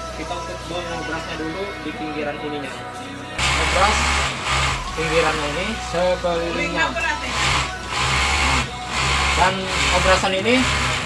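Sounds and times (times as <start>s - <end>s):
overlock sewing machine running: 3.4s - 5.5s, 7.3s - 11.0s.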